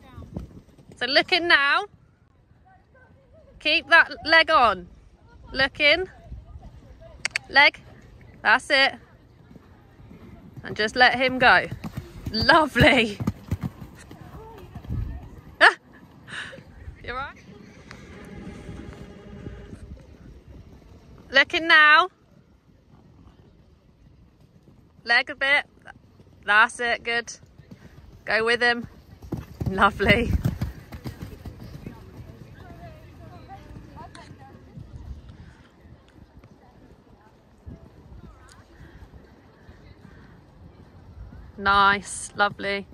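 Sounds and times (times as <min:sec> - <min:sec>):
horse hooves cantering on sand: 0:00.0 - 0:02.9, 0:07.8 - 0:42.9
horse hooves thudding on sand: 0:09.5 - 0:16.6.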